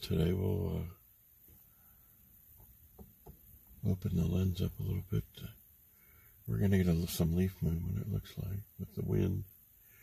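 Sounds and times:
man saying uh: 0.0s - 1.0s, 3.8s - 5.6s, 6.5s - 9.5s.

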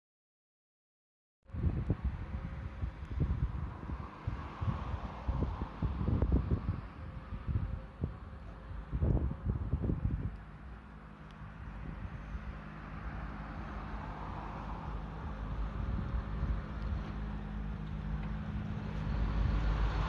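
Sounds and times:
wind buffeting microphone: 1.5s - 20.0s.

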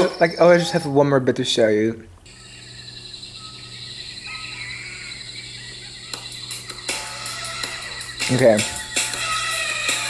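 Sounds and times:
insects buzzing: 2.2s - 10.0s
faint bird calls: 2.3s - 10.0s.

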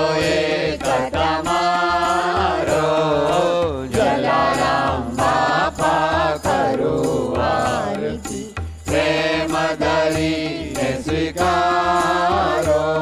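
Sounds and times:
percussion strikes: 0.0s - 13.0s.

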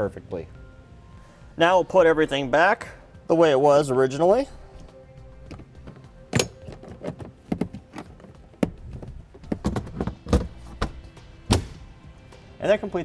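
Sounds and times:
faint background music: 0.0s - 13.0s
plastic panels knocking and clicking: 5.5s - 11.7s.

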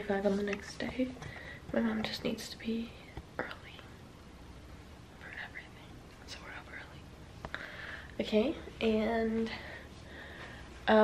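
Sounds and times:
faint room hiss: 0.0s - 11.0s
woman whispering: 0.1s - 4.0s, 5.2s - 7.1s.

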